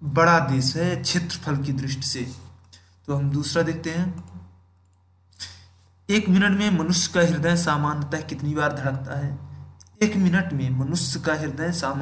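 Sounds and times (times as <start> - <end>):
low electrical hum: 0.0 - 12.0
person speaking: 0.0 - 12.0.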